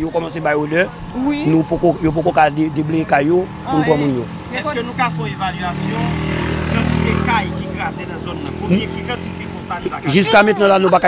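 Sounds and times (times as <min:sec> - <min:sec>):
people talking: 0:00.0 - 0:11.0
vehicle engine rumble: 0:00.0 - 0:11.0.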